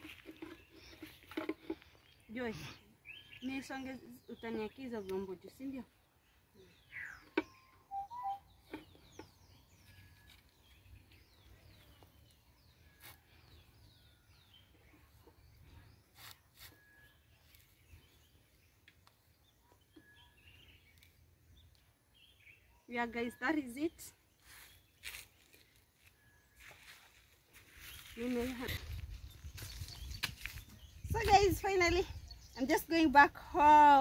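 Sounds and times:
small birds chirping: 0.0 - 34.0.

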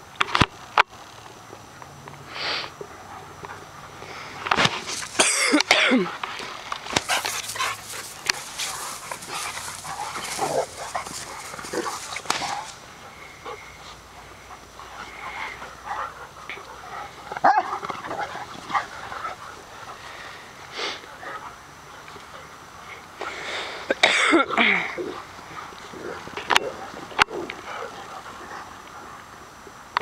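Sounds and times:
scuffles and bumps: 6.3 - 12.8
dogs barking: 7.0 - 20.0, 25.1 - 29.3.

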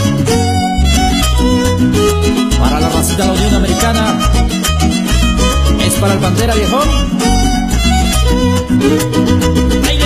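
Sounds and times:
steady bass beat: 0.0 - 10.0
violin line: 0.0 - 10.0.

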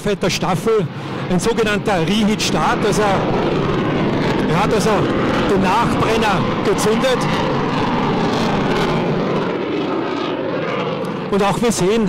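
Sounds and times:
jet engines in afterburner: 0.0 - 12.0.

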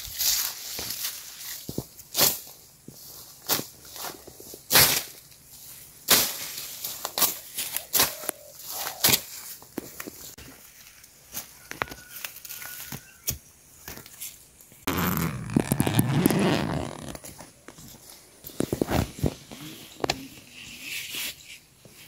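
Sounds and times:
branches brushing: 0.0 - 13.2, 13.9 - 21.5
footsteps through dry leaves: 0.0 - 13.2.

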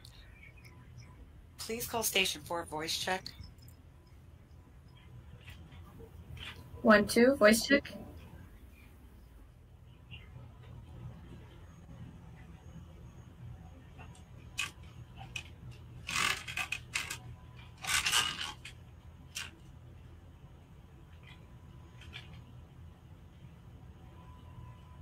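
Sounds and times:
ventilation hum: 0.0 - 25.0.

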